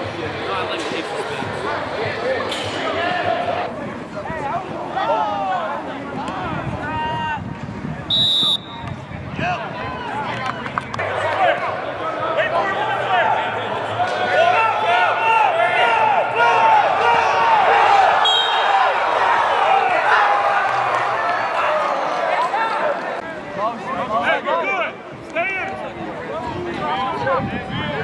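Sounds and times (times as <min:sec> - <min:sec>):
referee whistle: 0:08.1 - 0:08.9, 0:18.2 - 0:18.7
crowd shouting: 0:11.0 - 0:23.4.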